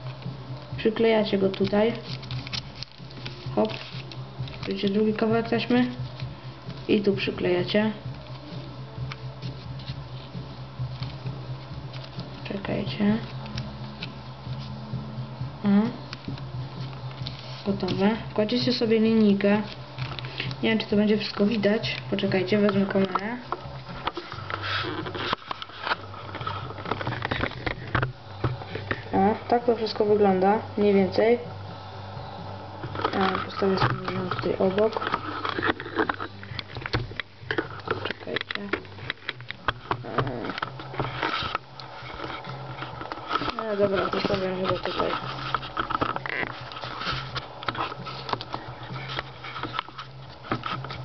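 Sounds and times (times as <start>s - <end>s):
low steady hum: 0.0s - 51.0s
camera handling rustling: 19.7s - 20.6s, 22.6s - 29.1s, 32.8s - 51.0s.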